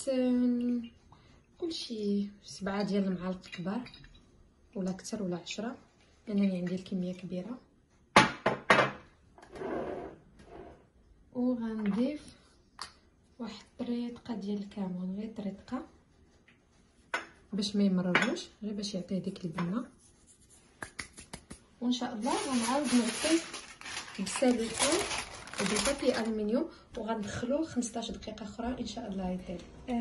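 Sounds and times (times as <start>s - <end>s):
woman speaking: 0.0s - 0.9s, 1.6s - 3.9s, 11.3s - 12.4s, 13.4s - 16.0s, 17.5s - 20.0s, 21.8s - 30.0s
kitchenware knocking on countertop: 8.2s - 9.0s
soft rustle: 22.0s - 26.4s.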